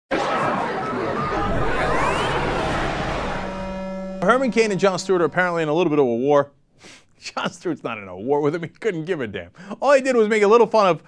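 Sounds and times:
crowd-like babble: 0.1 - 3.5
rising whistle-like glides: 1.2 - 5.5
held musical tone: 1.2 - 6.0.

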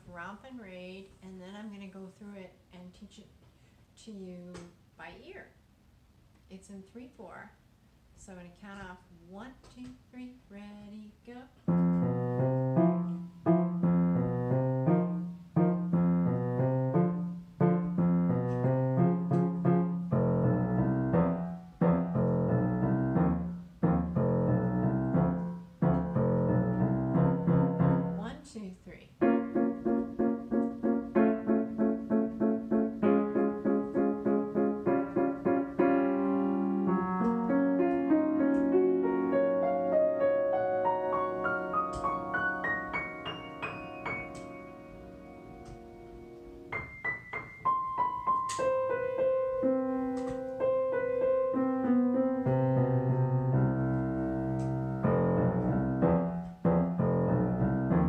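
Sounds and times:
grand piano playing: 11.6 - 28.4, 29.2 - 58.0.

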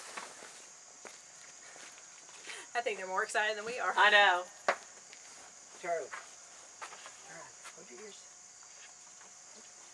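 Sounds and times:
woman speaking: 2.6 - 4.5.

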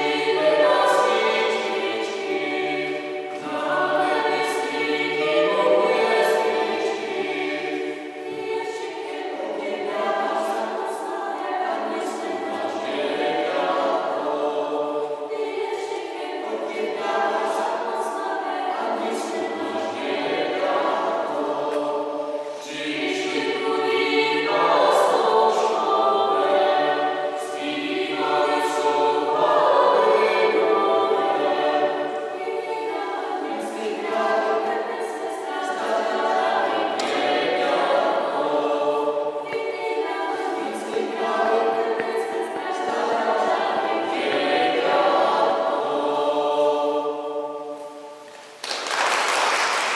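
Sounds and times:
vocal ensemble singing unaccompanied: 0.0 - 49.9.

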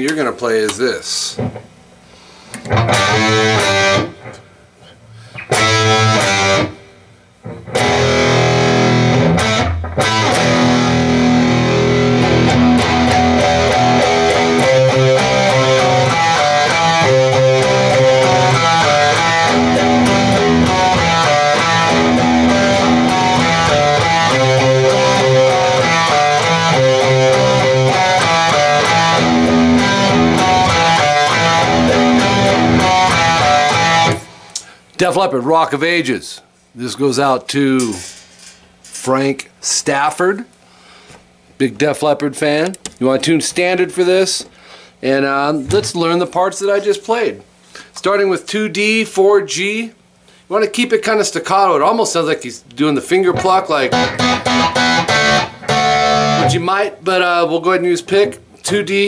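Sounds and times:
distorted electric guitar riff: 2.5 - 4.5, 5.2 - 34.8, 53.1 - 57.0.

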